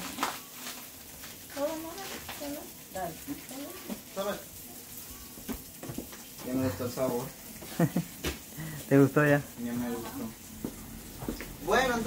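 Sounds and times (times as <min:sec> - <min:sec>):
meat sizzling in oil: 0:00.0 - 0:12.0.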